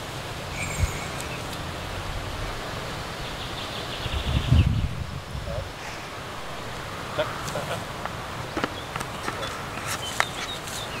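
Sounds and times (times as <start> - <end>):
birds chirping: 0.0 - 11.0
outdoor background hiss: 0.0 - 11.0.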